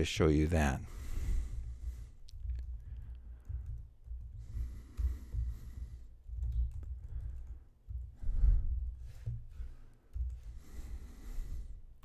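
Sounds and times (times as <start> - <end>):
typing on computer keyboard: 1.6 - 8.5, 9.1 - 10.6.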